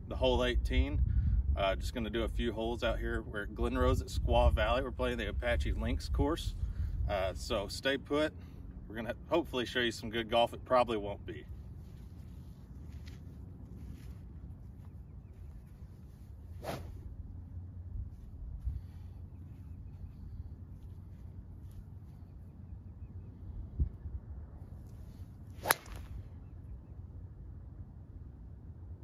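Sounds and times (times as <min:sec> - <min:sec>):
wind rumble on microphone: 0:00.0 - 0:07.9, 0:11.4 - 0:26.9
golf club striking ball: 0:25.6 - 0:26.2.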